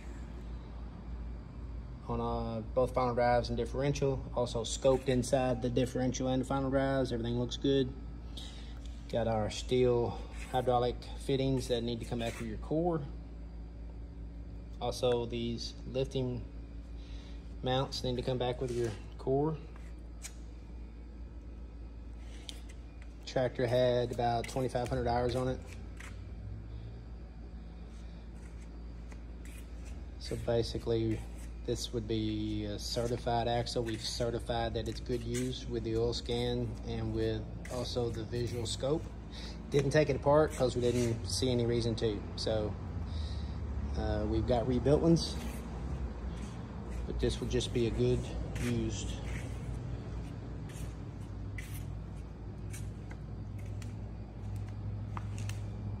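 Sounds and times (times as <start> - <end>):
low background hum: 0.0 - 56.0.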